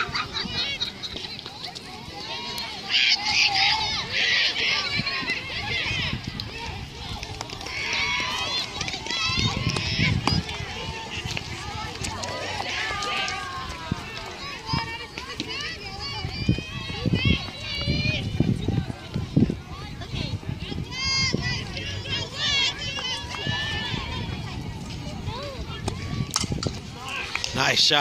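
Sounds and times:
distant girls calling and cheering: 0:00.0 - 0:28.0.

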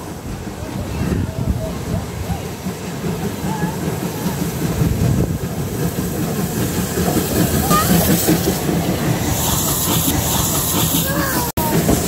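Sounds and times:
steam locomotive rumble: 0:00.0 - 0:12.0.

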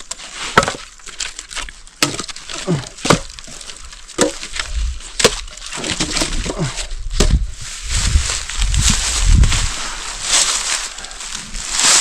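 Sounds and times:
firewood knocking together: 0:00.0 - 0:07.4
wood rustling and scraping: 0:00.0 - 0:12.0.

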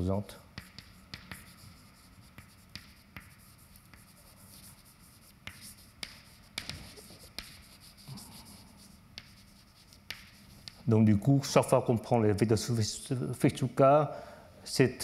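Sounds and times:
chalk scratching on blackboard: 0:00.5 - 0:10.9
chalk tapping on blackboard: 0:00.5 - 0:10.9.

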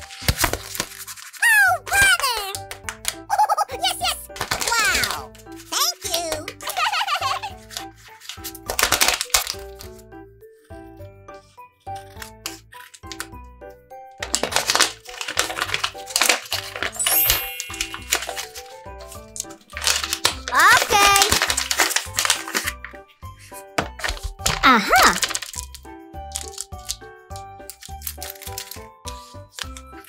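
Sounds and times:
paper rustling and crinkling: 0:00.0 - 0:03.2, 0:04.0 - 0:10.0, 0:10.7 - 0:13.3, 0:14.2 - 0:27.0, 0:27.7 - 0:30.0.

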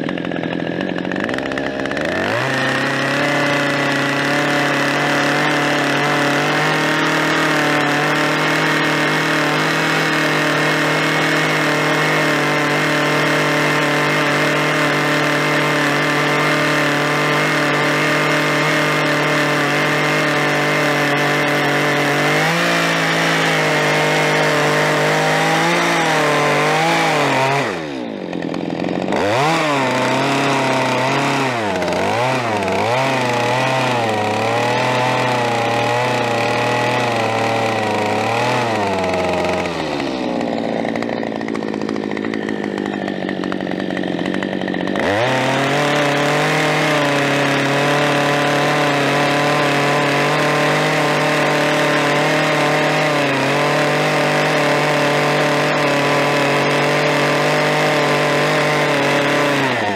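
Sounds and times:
chainsaw cutting wood: 0:00.0 - 0:59.9.

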